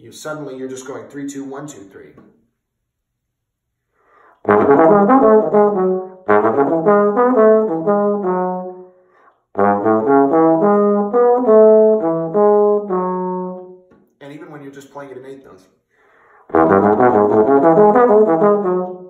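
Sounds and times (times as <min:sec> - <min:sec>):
bass trombone playing fast runs: 0:04.4 - 0:08.8, 0:09.6 - 0:13.6, 0:16.5 - 0:19.0.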